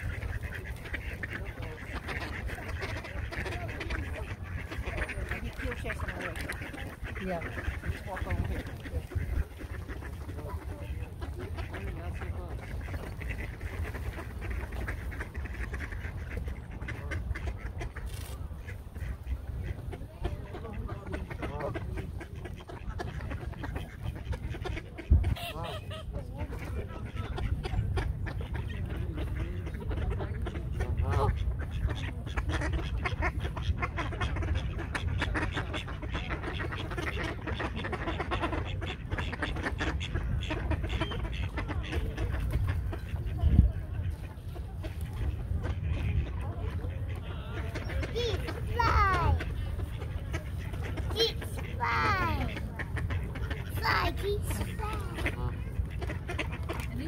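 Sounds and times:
ducks quacking: 0:00.0 - 0:57.0
geese honking: 0:00.0 - 0:57.0.

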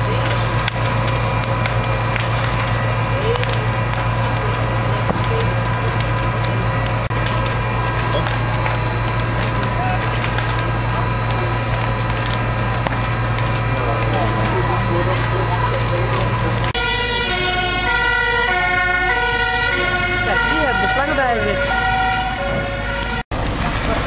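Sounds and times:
burning wood crackling and popping: 0:00.0 - 0:24.0
low engine drone: 0:00.0 - 0:24.0.

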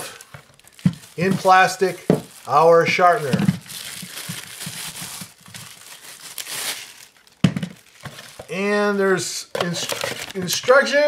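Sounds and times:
plastic wrapping crinkling: 0:00.0 - 0:08.7, 0:09.5 - 0:11.0.

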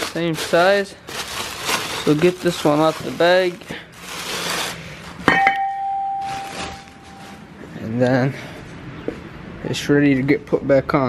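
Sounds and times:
plastic bag crinkling: 0:00.0 - 0:05.3, 0:06.1 - 0:07.5.

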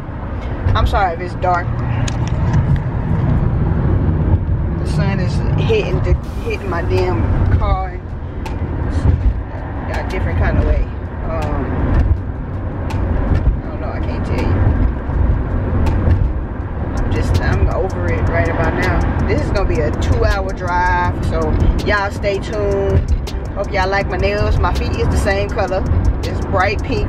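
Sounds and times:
car cabin road noise: 0:00.0 - 0:27.0
person speaking: 0:17.0 - 0:27.0.

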